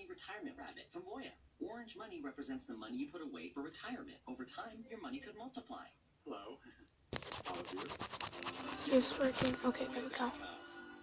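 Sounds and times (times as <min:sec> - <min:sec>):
voice: 0:00.0 - 0:10.5
phone microphone scratching: 0:07.1 - 0:09.8.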